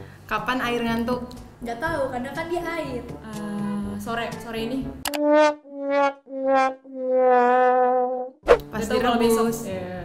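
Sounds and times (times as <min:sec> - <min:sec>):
sad trombone notes: 0:05.2 - 0:08.3.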